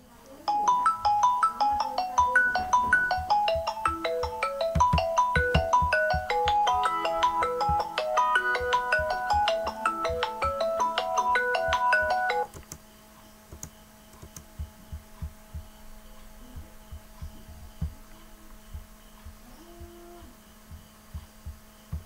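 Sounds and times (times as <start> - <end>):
faint steady hum: 0.0 - 22.0
phone melodic ringtone: 0.5 - 12.5.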